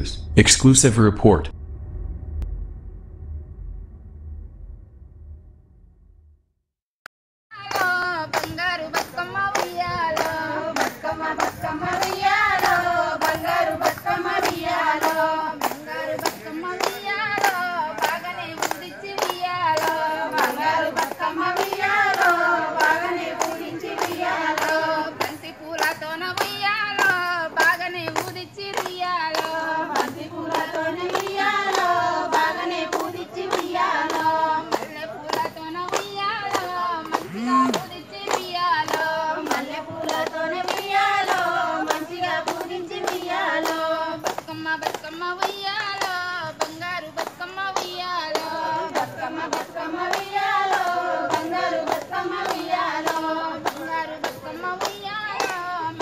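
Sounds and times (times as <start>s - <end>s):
women singing folk song: 7.5s - 56.0s
hand claps: 7.6s - 56.0s.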